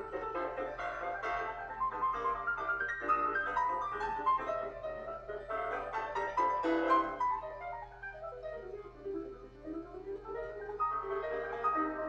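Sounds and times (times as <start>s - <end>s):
fast solo piano music: 0.0s - 12.0s.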